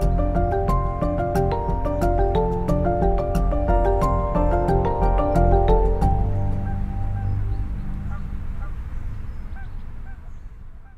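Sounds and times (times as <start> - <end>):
steady low rumble: 0.0 - 10.9.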